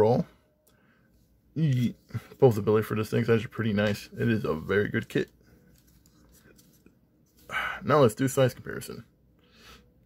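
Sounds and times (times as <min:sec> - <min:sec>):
man speaking: 0:00.0 - 0:00.3, 0:01.6 - 0:05.3, 0:07.5 - 0:09.1.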